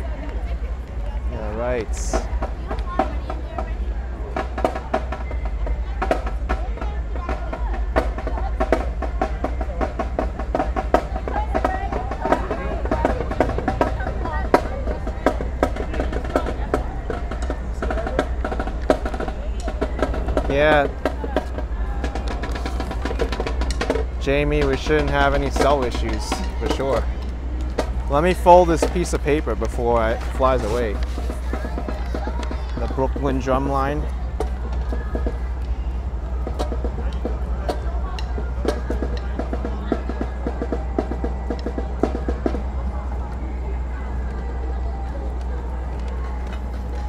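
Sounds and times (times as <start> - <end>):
voices talking: 0.0 - 47.0
drumline snare drums: 1.4 - 44.4.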